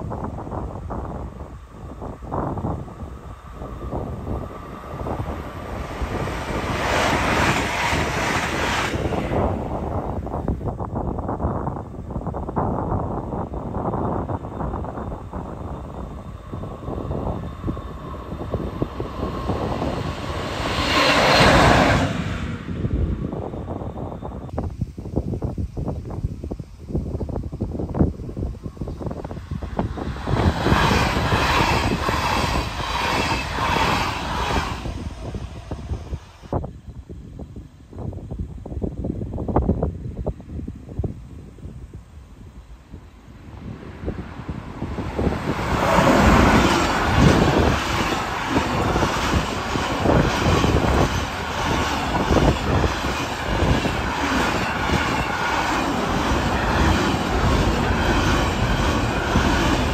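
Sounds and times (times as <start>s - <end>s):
electric trains passing: 0.0s - 24.8s, 25.4s - 37.4s, 41.7s - 59.9s
wheel-on-rail rumble: 43.4s - 59.9s.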